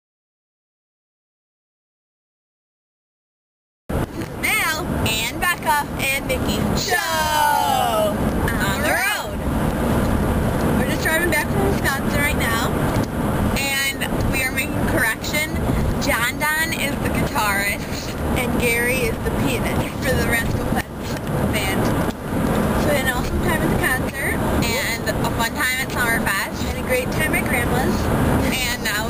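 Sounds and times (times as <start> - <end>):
road and engine noise: 3.9 - 29.0
girls talking: 4.2 - 9.4, 10.8 - 12.8, 13.6 - 21.9, 22.8 - 29.0.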